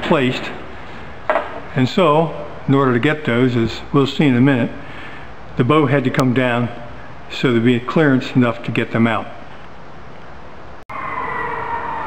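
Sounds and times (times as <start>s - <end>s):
background hiss: 0.0s - 10.8s.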